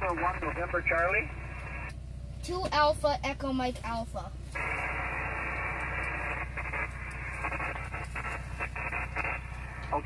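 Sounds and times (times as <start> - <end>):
radio band noise hiss: 0.0 - 1.9, 4.5 - 10.0
weak broken radio signal: 0.0 - 1.9, 4.6 - 10.0.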